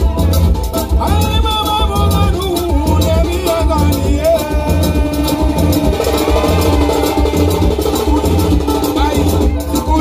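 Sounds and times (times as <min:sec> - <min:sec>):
hand drums: 0:00.0 - 0:10.0
heavy bass: 0:00.0 - 0:10.0
live band music: 0:00.0 - 0:10.0.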